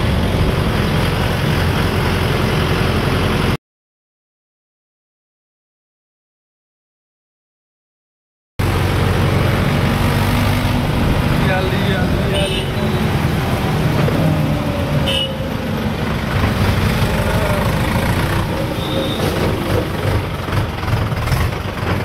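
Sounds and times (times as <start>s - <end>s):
tractor engine running: 8.6s - 22.0s
high horn toots: 15.0s - 15.5s, 18.6s - 19.5s.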